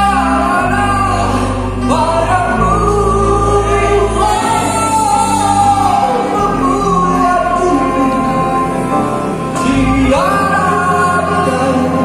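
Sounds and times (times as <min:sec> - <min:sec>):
bass guitar: 0:00.0 - 0:12.0
electric and acoustic guitars: 0:00.0 - 0:12.0
person singing long held notes: 0:00.0 - 0:12.0.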